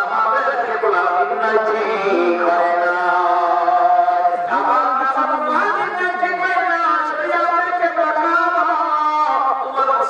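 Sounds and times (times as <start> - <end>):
man chanting through loudspeakers: 0.0 - 10.0.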